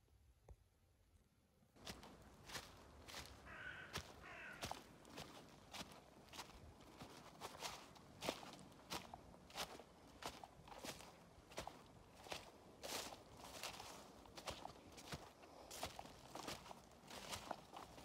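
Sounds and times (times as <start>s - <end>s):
faint footsteps walking: 1.8s - 18.0s.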